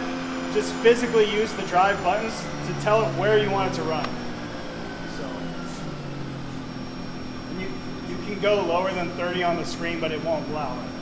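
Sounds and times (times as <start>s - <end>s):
vacuum pump motor hum: 0.0s - 11.0s.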